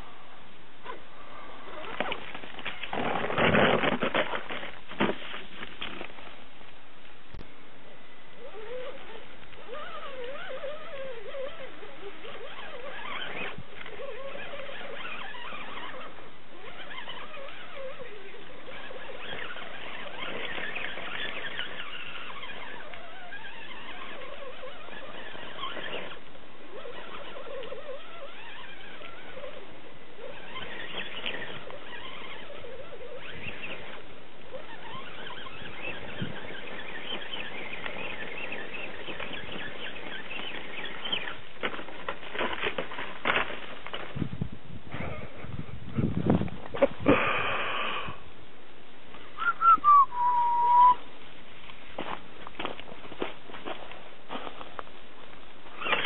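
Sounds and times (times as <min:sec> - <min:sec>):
tyres scrabbling on rock: 0:01.7 - 0:07.4, 0:08.5 - 0:47.4, 0:51.6 - 0:56.0
toy car electric motor whining: 0:08.4 - 0:44.1, 0:55.7 - 0:56.0.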